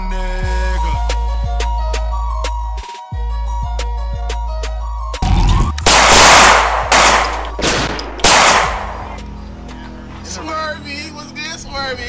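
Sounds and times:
music beat: 0.3 - 9.8
gunshots with echo: 5.8 - 9.2.

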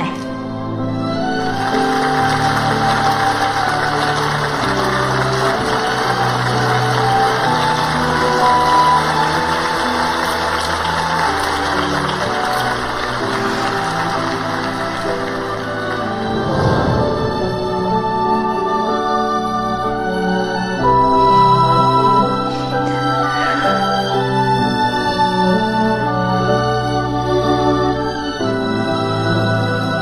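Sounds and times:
slow music with long held notes: 0.0 - 30.0
audience applauding: 0.8 - 19.1.

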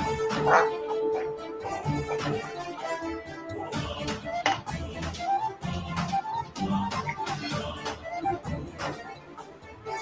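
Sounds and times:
background music melody: 0.0 - 10.0.

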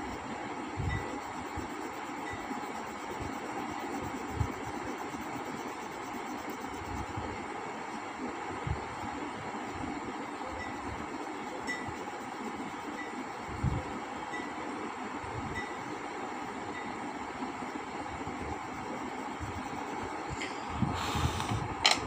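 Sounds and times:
background rumble and hiss: 0.0 - 22.0.

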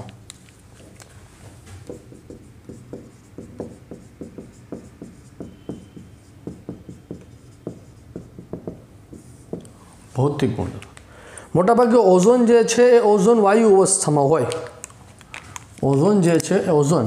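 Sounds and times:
marker pen writing on whiteboard: 0.0 - 10.9.

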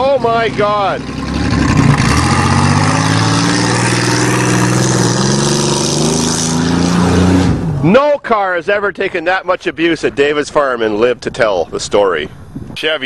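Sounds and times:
car engine running under load: 0.0 - 7.8.

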